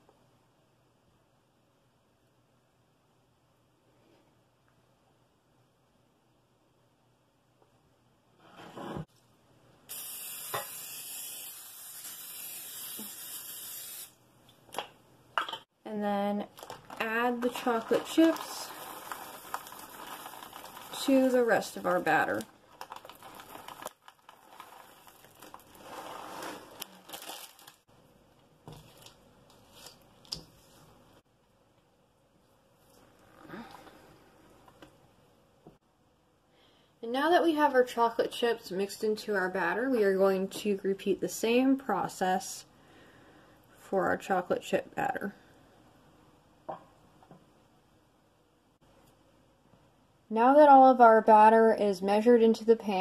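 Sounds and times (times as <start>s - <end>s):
cooking spray hissing into metal pan: 9.9s - 14.2s.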